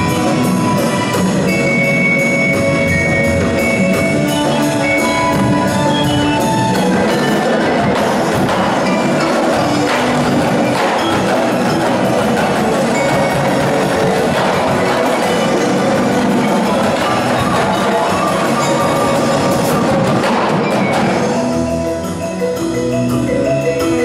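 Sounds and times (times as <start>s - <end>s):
marching drums playing: 0.0s - 21.8s
mallet percussion ringing: 0.0s - 24.0s.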